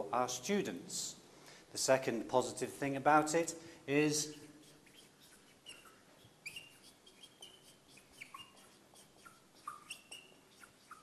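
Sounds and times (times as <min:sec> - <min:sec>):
marker squeaking on whiteboard: 0:03.9 - 0:11.0.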